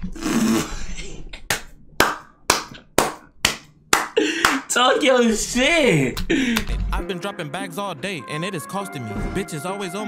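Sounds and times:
person clapping hands: 0:01.4 - 0:04.7, 0:06.2 - 0:06.7.

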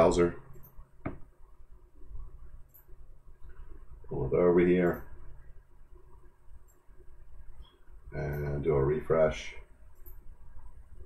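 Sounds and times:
faint steady low hum: 0:00.0 - 0:11.0.

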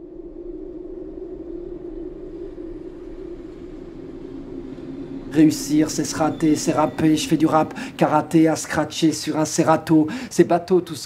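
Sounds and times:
distant city rumble and hum: 0:00.0 - 0:11.0.

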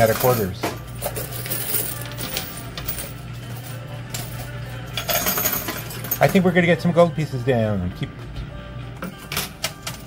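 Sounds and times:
coins clinking and sliding: 0:00.0 - 0:06.4.

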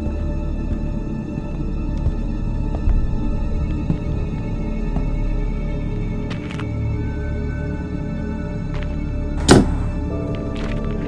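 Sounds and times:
dark droning film score: 0:00.0 - 0:11.0
bat thunk against door frame: 0:09.4 - 0:09.8.

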